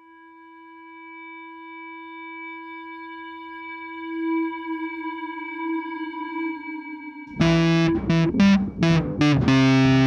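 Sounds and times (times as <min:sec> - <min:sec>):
sustained instrumental drone: 0:07.3 - 0:10.0.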